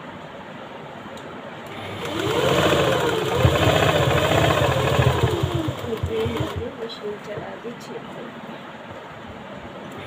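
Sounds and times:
sewing machine motor whine: 0:01.7 - 0:06.8
sewing machine needle clatter: 0:01.9 - 0:06.7.

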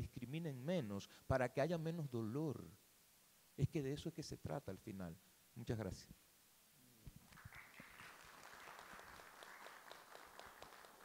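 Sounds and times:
faint applause: 0:07.2 - 0:11.0.

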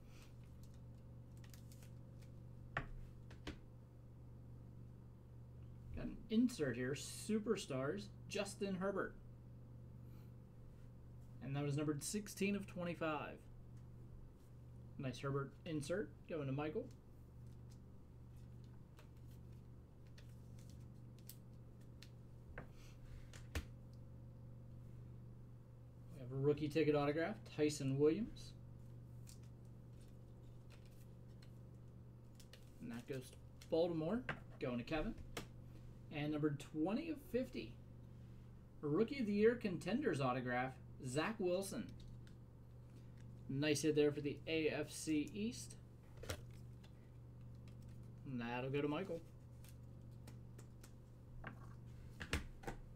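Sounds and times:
faint steady hum: 0:00.0 - 0:52.9.

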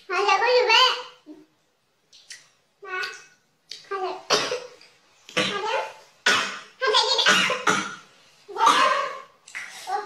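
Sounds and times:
woman coughing: 0:07.2 - 0:08.0, 0:08.6 - 0:09.1.

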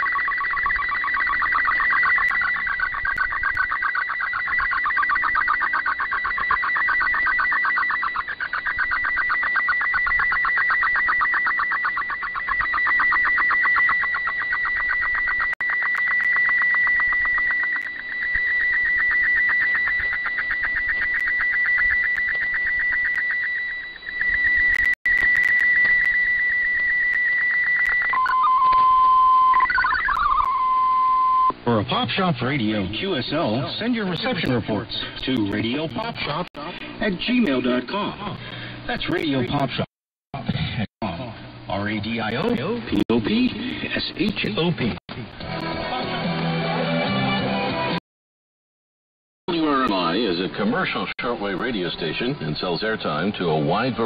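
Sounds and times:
warbling digital data tones: 0:00.0 - 0:31.6, 0:32.5 - 0:39.9.

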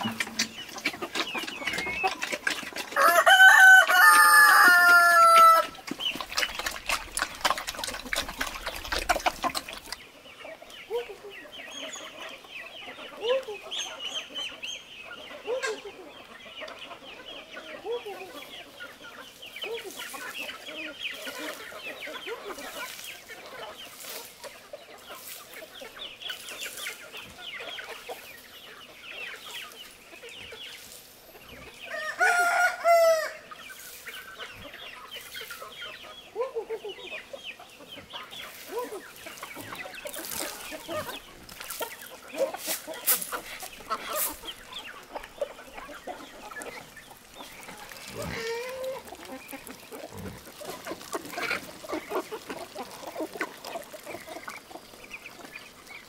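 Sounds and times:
chickens clucking: 0:00.0 - 0:56.0
rooster crowing: 0:03.0 - 0:05.7, 0:31.9 - 0:33.4.

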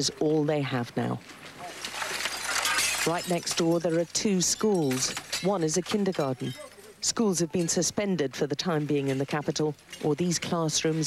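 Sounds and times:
broken glass clinking and crunching: 0:01.6 - 0:06.9, 0:08.9 - 0:11.0.

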